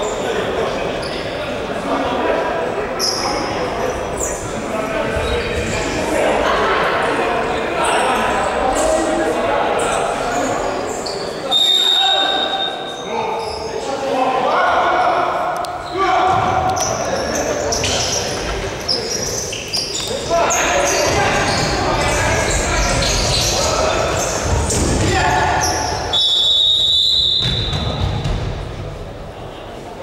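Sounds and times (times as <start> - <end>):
referee's whistle blast: 25.8 - 28.0
ball bouncing on hard floor: 27.4 - 28.6.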